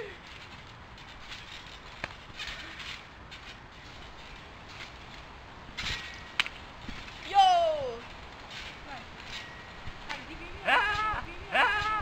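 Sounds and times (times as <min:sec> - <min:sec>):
trampoline clicks: 0:00.0 - 0:12.0
trampoline rustles: 0:00.0 - 0:12.0.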